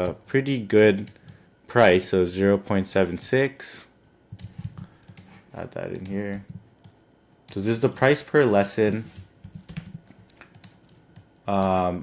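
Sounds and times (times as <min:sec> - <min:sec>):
typing on a computer keyboard: 0:04.4 - 0:05.3, 0:09.1 - 0:11.7.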